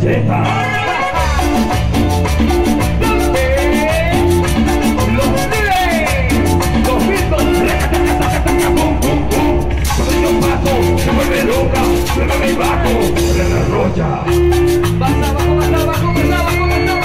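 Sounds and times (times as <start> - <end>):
live latin dance band: 0.0 - 17.0
person singing on microphone: 2.8 - 17.0.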